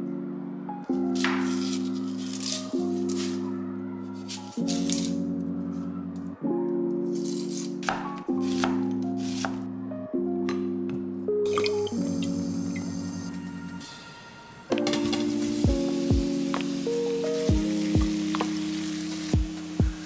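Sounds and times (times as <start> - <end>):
background music held chords: 0.0 - 20.0.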